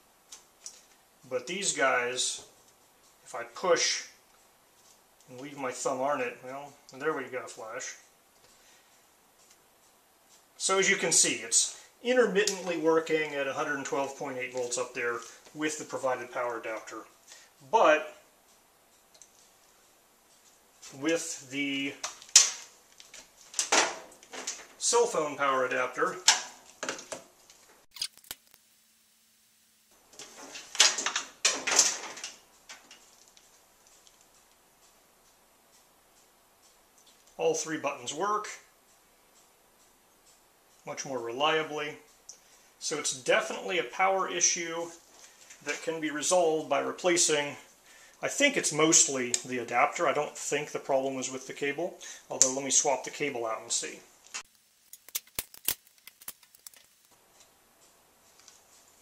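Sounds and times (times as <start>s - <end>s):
power cords rustling and clattering: 22.0s - 24.8s, 30.0s - 34.4s
small clicks: 54.2s - 58.7s.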